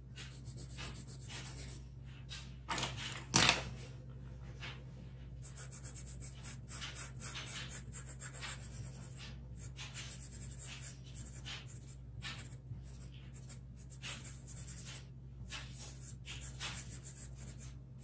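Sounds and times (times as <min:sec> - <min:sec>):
steady low hum: 0:00.0 - 0:18.0
blending tool rubbing on paper: 0:05.4 - 0:18.0.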